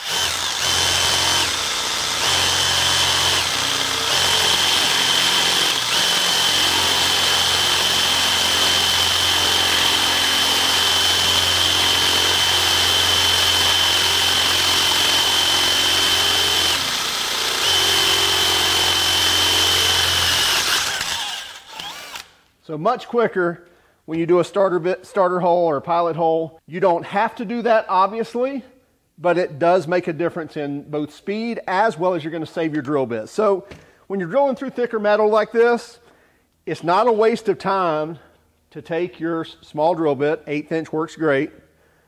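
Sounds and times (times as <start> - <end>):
cordless drill whining through steel: 0.0 - 22.5.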